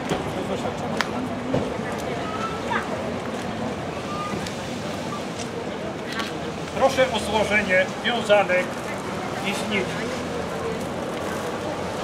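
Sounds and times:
faint crowd voices: 0:00.0 - 0:12.0.

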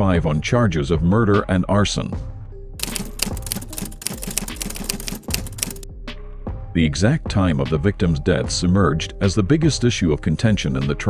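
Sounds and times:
quiet background music: 0:00.0 - 0:11.0
rapid uneven clicking: 0:02.8 - 0:05.8.

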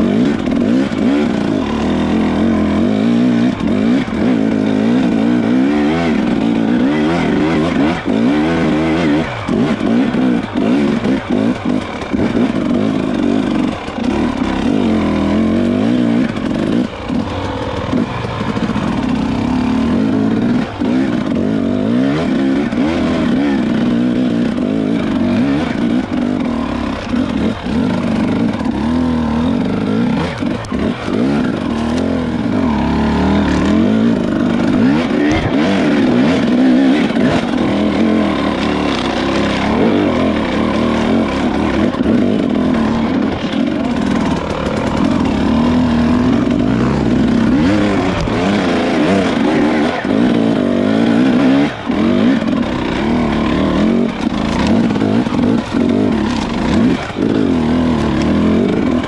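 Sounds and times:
dirt bike engine revving: 0:00.0 - 0:59.0.

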